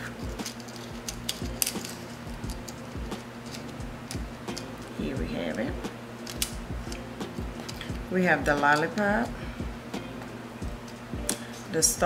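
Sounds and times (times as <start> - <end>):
metal charms clinking: 0.0 - 9.3
background music with beat: 0.0 - 12.0.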